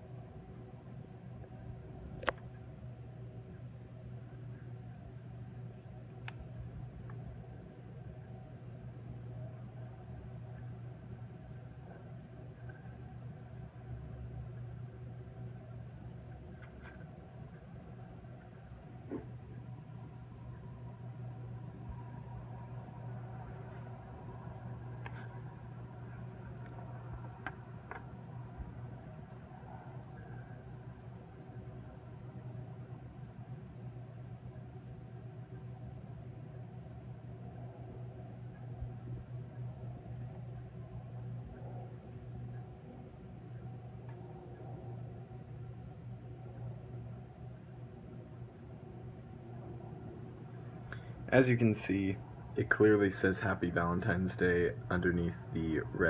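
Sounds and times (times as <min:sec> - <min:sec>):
low background hum: 0:00.0 - 0:56.0.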